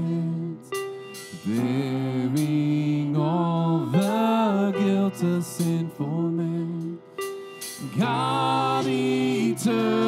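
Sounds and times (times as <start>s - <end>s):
drums: 0.7s - 2.8s, 4.0s - 6.0s, 7.2s - 10.0s
voices singing in harmony: 7.8s - 10.0s.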